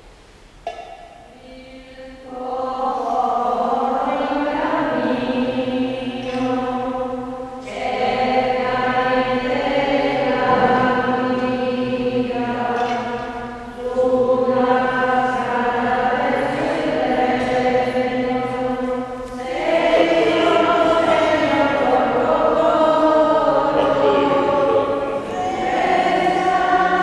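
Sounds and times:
voices singing a slow hymn: 0:01.2 - 0:27.0.

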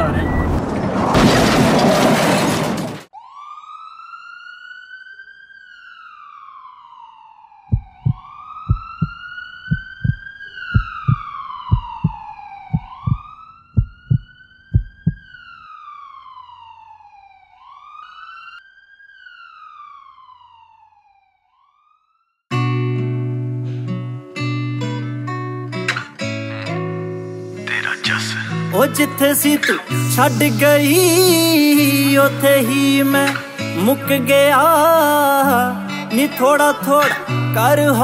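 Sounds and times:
emergency siren wailing: 0:03.1 - 0:22.4
deep thumps: 0:07.7 - 0:15.3
acoustic guitar music: 0:22.5 - 0:38.0.

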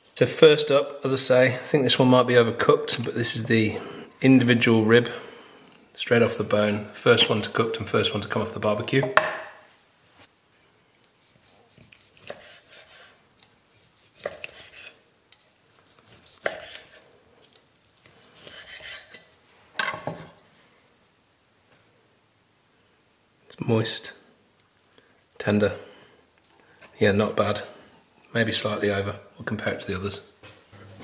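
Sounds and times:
meat pulled off bone: 0:11.0 - 0:19.4, 0:24.5 - 0:25.4
knife cutting meat on wooden board: 0:11.2 - 0:15.0, 0:15.7 - 0:17.1, 0:18.1 - 0:19.3.

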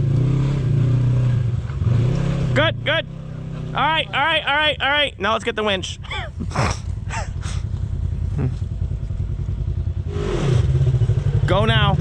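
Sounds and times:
engine idling: 0:03.8 - 0:10.0
person vocal sounds: 0:08.4 - 0:08.6.

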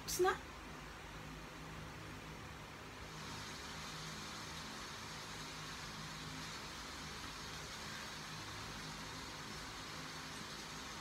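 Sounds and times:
steady hiss: 0:00.0 - 0:11.0.

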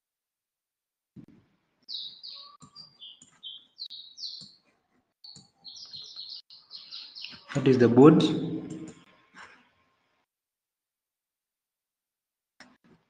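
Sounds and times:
birds chirping: 0:01.8 - 0:09.0.

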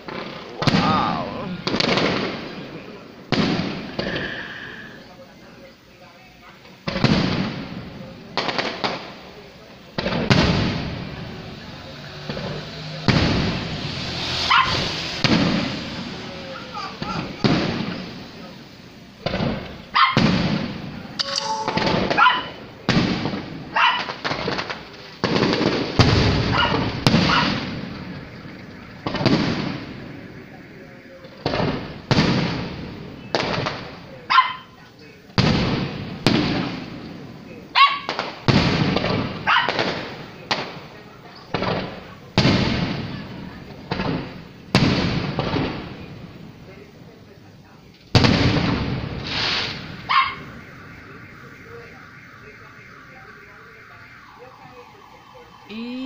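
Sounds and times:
firework shells bursting: 0:48.0 - 0:53.7.

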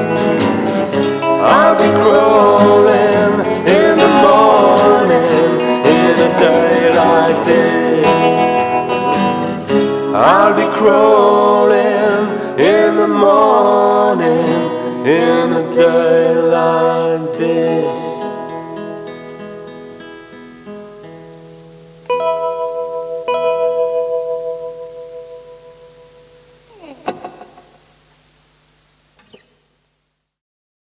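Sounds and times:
guitar picked and strummed: 0:00.0 - 0:28.0, 0:29.2 - 0:29.6.

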